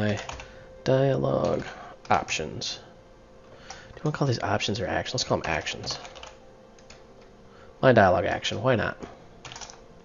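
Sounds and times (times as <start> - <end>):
man talking: 0.0 - 2.9, 4.0 - 6.1, 7.8 - 9.1.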